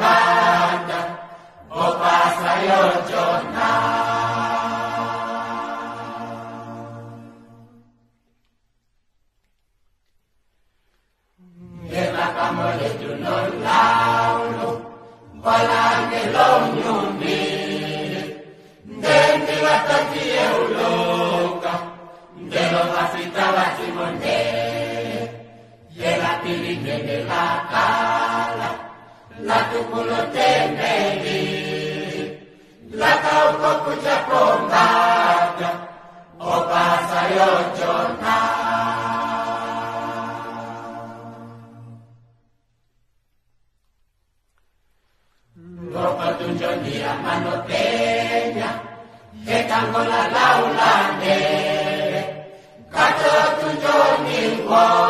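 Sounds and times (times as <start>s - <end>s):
choir singing gospel: 0.0s - 8.3s, 11.4s - 42.4s, 45.3s - 55.0s.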